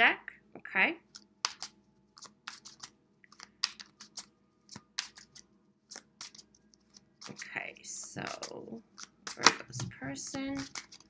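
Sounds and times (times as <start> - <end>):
cards being shuffled: 1.1 - 7.5, 8.2 - 11.0.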